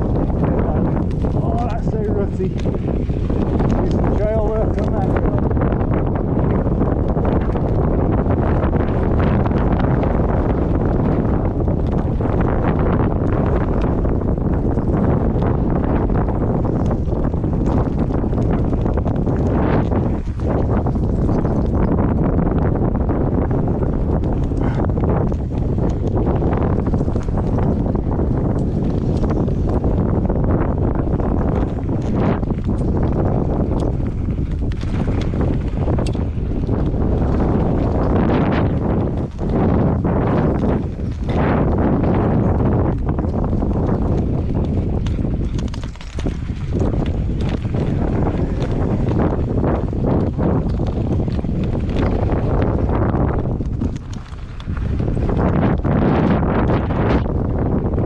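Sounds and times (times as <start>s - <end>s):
bike frame rattle: 0.0s - 56.8s
rumble of bike tyres on dirt: 0.0s - 58.0s
wind buffeting microphone: 0.0s - 58.0s.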